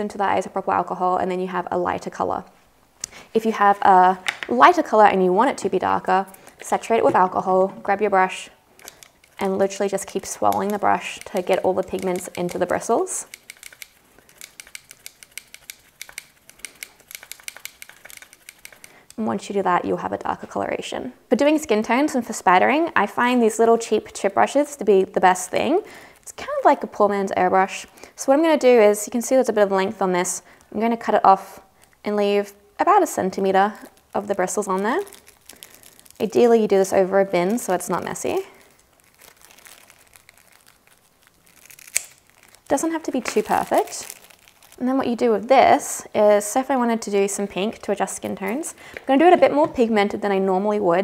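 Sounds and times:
brush clicking against plastic palette: 8.8s - 19.2s.

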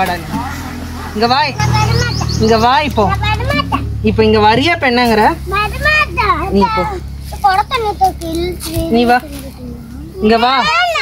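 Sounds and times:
young child talking: 1.6s - 4.0s, 5.4s - 11.0s.

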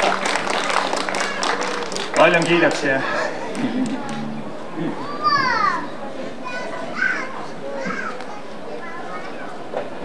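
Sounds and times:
children's high calls: 4.9s - 9.6s.

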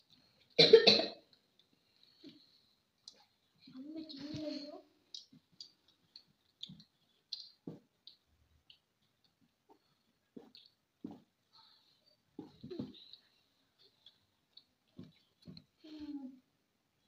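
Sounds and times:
loud cough: 0.6s - 1.2s.

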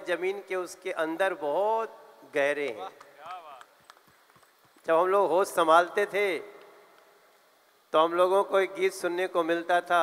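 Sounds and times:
man speaking into microphone: 0.0s - 3.8s, 4.8s - 6.6s, 7.9s - 10.0s
faint scattered hand claps: 2.8s - 4.9s.

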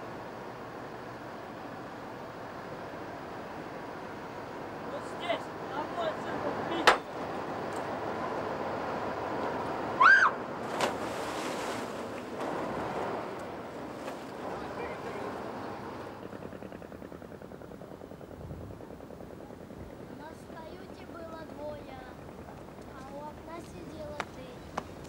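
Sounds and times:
wind and water noise: 0.0s - 25.0s
faint fast pulsing: 11.0s - 25.0s.

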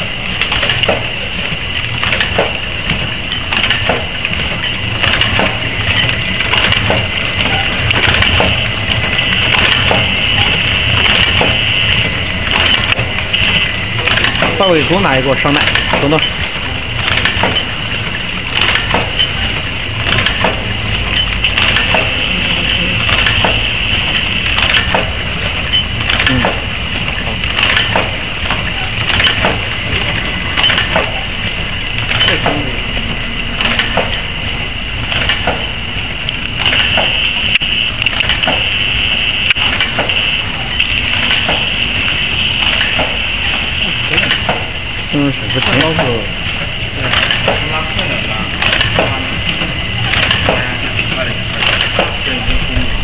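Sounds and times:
machine high hum: 0.0s - 53.0s
mechanical clicking: 0.3s - 31.2s, 31.8s - 32.6s, 33.4s - 34.4s, 35.0s - 53.0s.

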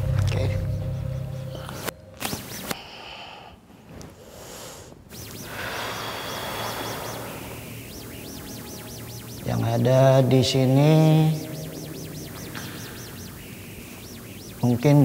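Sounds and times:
crackles and clicks: 5.1s - 15.0s
microphone interference buzz: 5.1s - 15.0s.

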